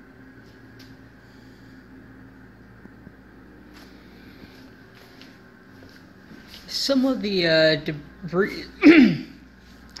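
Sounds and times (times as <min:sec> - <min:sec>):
machine humming: 0:00.0 - 0:10.0.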